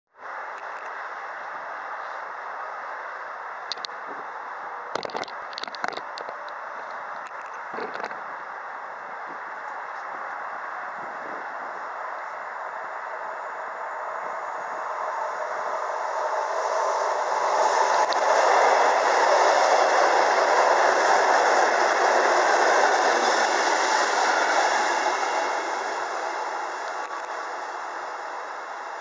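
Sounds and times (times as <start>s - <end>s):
train wheels rolling on rails: 0.2s - 29.0s.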